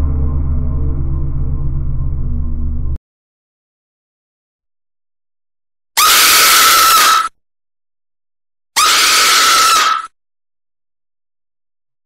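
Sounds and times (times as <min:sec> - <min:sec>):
harsh shrill scream: 0:06.0 - 0:07.4, 0:08.8 - 0:10.2.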